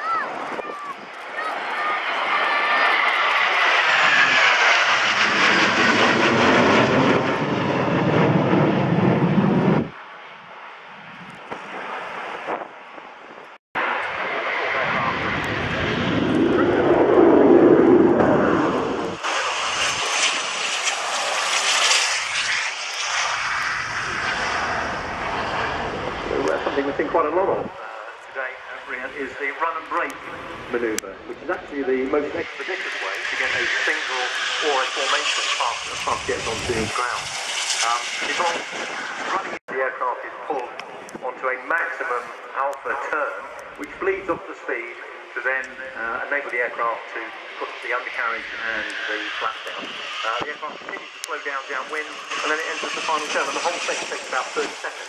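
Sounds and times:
fighter jets flying over: 0.0s - 55.0s
jet taking off and climbing: 0.0s - 55.0s.

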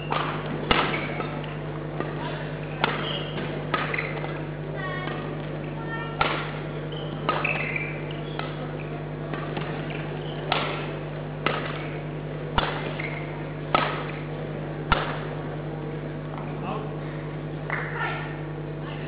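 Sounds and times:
rackets hitting shuttlecock: 0.0s - 15.4s
steady low hum: 0.0s - 19.0s.

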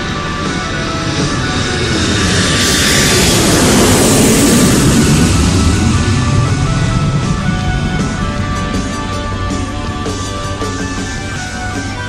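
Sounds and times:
background music: 0.0s - 12.0s
rushing aircraft noise: 0.0s - 12.0s.

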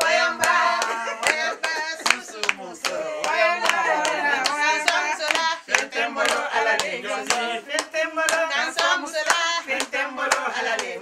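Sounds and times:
hand claps: 0.0s - 11.0s
women singing unaccompanied: 0.0s - 11.0s.

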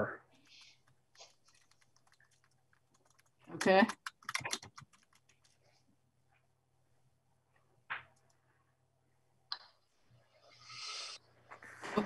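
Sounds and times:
computer keyboard typing: 0.4s - 5.6s.

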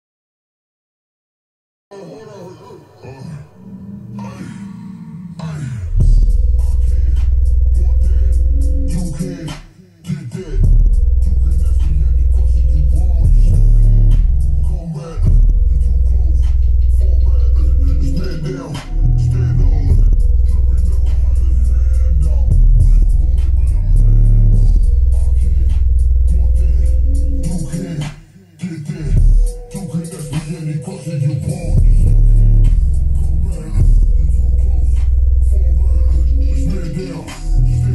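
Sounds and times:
hip hop through subwoofer: 2.8s - 37.9s.

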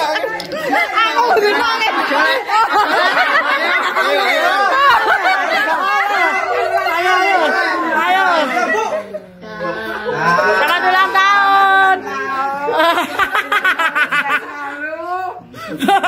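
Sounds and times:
many voices chattering: 0.0s - 16.0s.

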